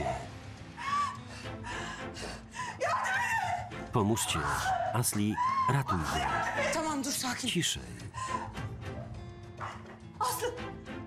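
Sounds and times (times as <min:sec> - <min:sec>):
background music: 0:00.0 - 0:11.0
woman sobbing and gasping: 0:08.1 - 0:08.8.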